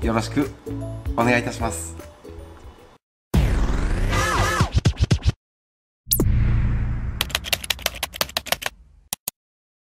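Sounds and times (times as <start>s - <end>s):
keyboard typing clicks: 7.2s - 9.3s.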